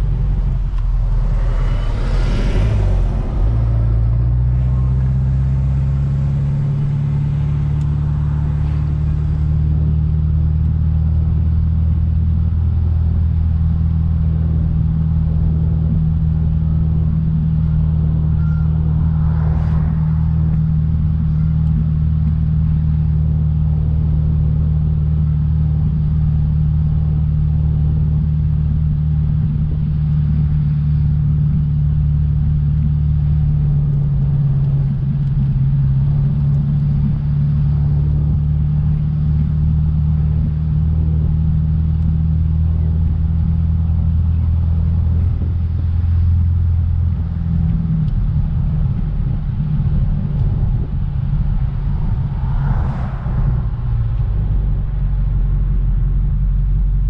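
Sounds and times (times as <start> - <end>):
brief whoosh: 0.0 - 6.0, 17.9 - 22.6, 51.4 - 55.5
car engine running: 0.0 - 57.0.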